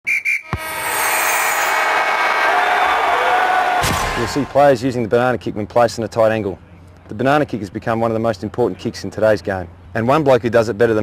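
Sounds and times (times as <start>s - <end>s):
swooshing ring with falling whistle: 0.1s - 4.5s
sharp hit: 0.5s - 4.8s.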